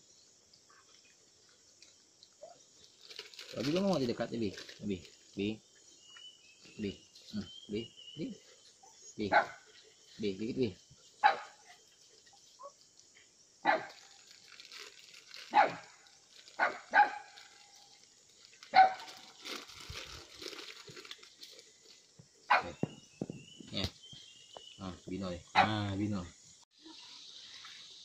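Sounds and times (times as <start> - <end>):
dogs barking sharply: 15.5 - 15.8, 16.6 - 17.3, 18.7 - 19.1, 22.5 - 22.8.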